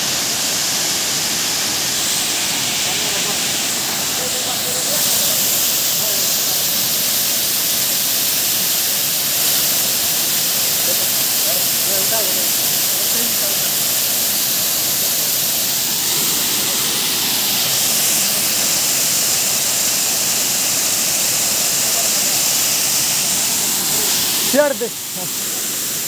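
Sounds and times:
water pouring over rock: 0.0s - 26.0s.

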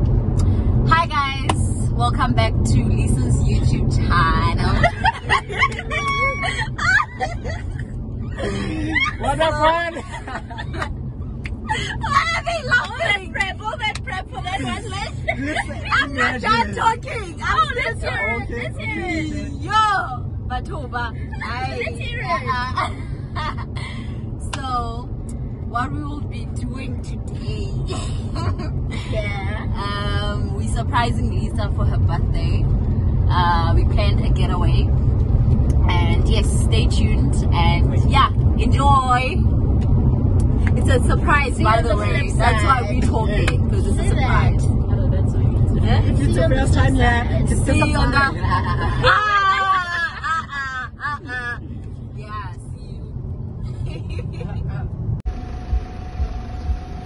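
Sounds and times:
car cabin road rumble: 0.0s - 57.0s
faint steady hum: 0.0s - 57.0s
woman laughing: 4.6s - 10.9s, 14.3s - 19.5s, 27.9s - 29.2s, 48.0s - 51.6s, 53.7s - 54.7s.

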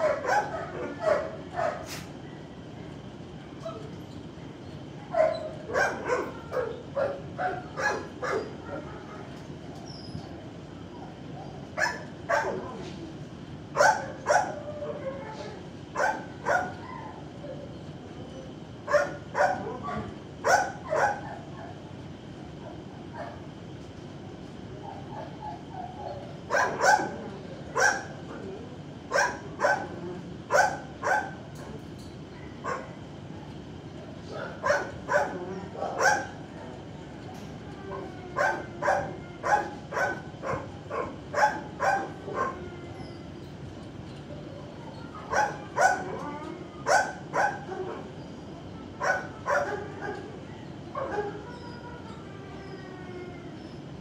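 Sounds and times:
dogs barking: 0.0s - 2.0s, 5.1s - 9.1s, 11.1s - 12.8s, 13.8s - 14.9s, 15.9s - 17.2s, 18.8s - 21.9s, 22.6s - 23.5s, 24.8s - 28.3s, 29.1s - 31.8s, 32.6s - 33.0s, 34.3s - 36.5s, 37.9s - 42.8s, 45.2s - 48.2s, 49.0s - 51.6s.

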